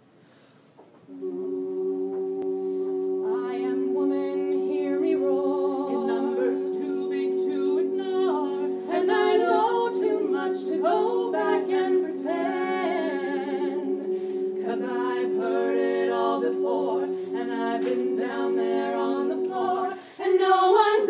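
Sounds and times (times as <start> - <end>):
women's choir singing a cappella: 1.1 - 21.0.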